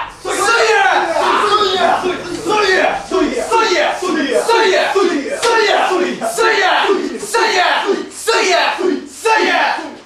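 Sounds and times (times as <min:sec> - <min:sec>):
rhythmic chant shouting: 0:00.0 - 0:10.0.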